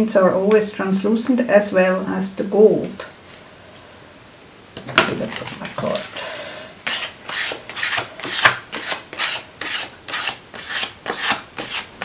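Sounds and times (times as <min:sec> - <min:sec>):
plastic card scraping paint on paper: 0:06.8 - 0:12.0.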